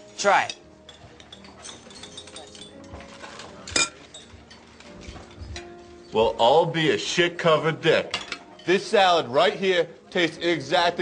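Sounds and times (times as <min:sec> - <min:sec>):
faint music: 0:00.0 - 0:11.0
fork clinking against plate: 0:00.5 - 0:05.7.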